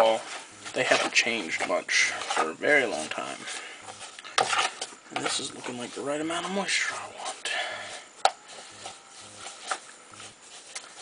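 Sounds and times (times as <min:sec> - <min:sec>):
pen stirring damp substrate: 0:00.0 - 0:11.0.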